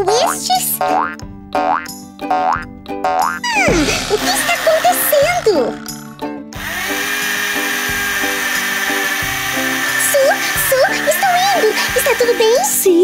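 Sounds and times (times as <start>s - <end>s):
drill churning watermelon: 3.5s - 12.9s.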